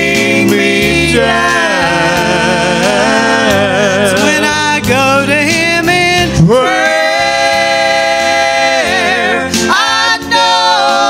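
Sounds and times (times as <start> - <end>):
man and women singing: 0.0 - 11.0.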